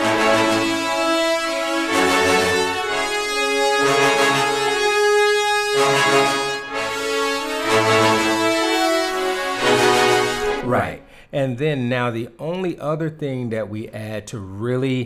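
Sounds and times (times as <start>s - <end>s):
orchestral brass chords: 0.0s - 11.3s.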